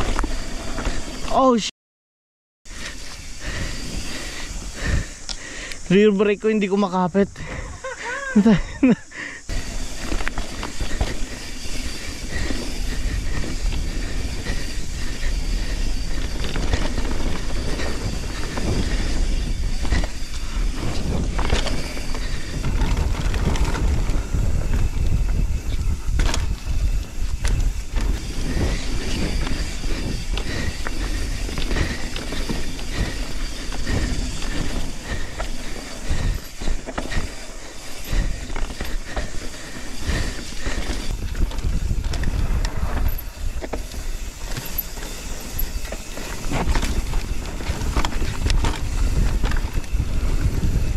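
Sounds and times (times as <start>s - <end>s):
bike rattling: 0.0s - 1.6s, 2.7s - 50.9s
bike tyres rolling over dirt: 0.0s - 1.6s, 2.7s - 50.9s.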